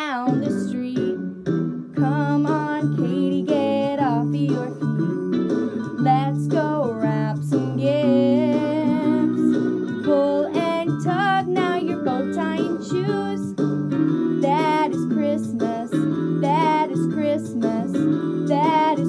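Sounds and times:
sung christmas song: 0.0 - 19.0.

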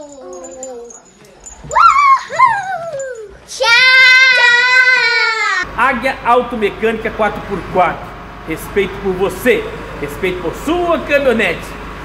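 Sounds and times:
small bells tinkling: 0.0 - 4.4
girls calling: 0.0 - 5.7
girls shouting: 1.7 - 5.7.

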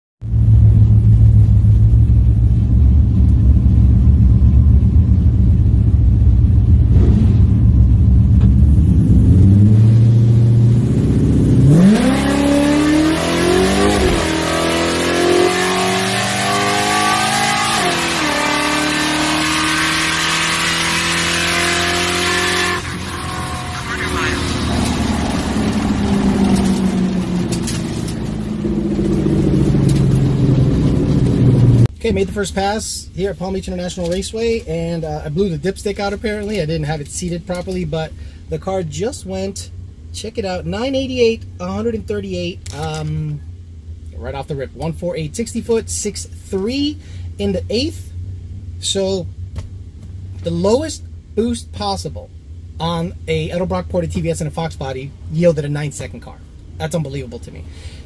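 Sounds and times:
car engine revving: 0.3 - 31.9.

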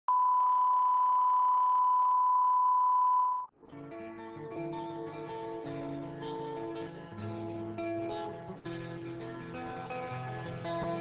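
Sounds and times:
guitar music: 3.6 - 11.0.

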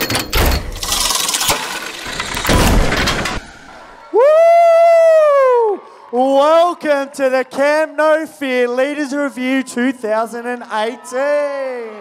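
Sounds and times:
crashing shattering impacts: 0.4 - 3.7.

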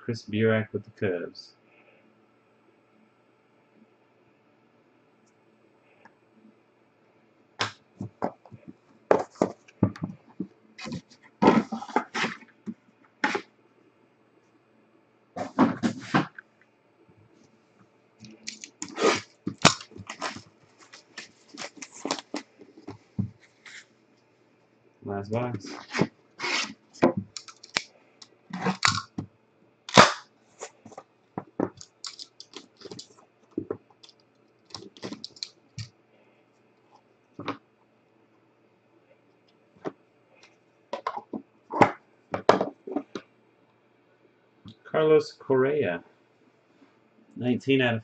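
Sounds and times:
card box knocks and scrapes: 10.8 - 12.5, 15.4 - 16.3
plastic wrap crinkling: 18.2 - 23.0, 31.7 - 33.2.

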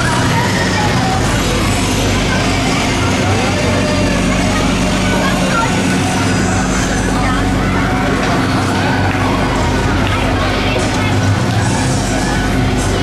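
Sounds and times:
crowd voices: 0.0 - 13.0
fairground ride machinery hum: 0.0 - 13.0.

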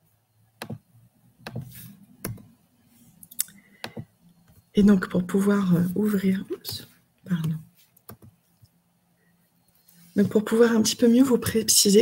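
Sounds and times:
computer mouse clicks: 7.4 - 8.7.

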